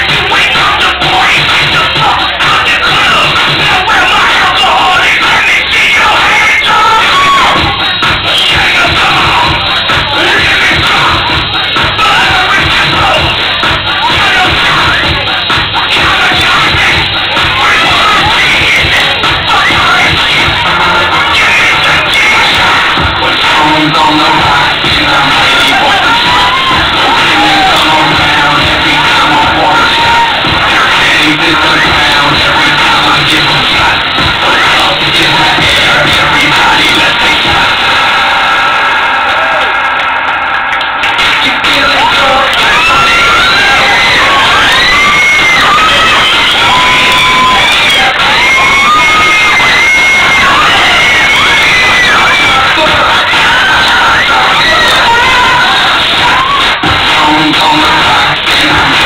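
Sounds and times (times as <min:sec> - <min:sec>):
audience cheering and shouting: 0:00.0 - 0:59.0
crowd screams and whoops: 0:00.0 - 0:59.0
loud dance music over speakers: 0:00.0 - 0:59.0.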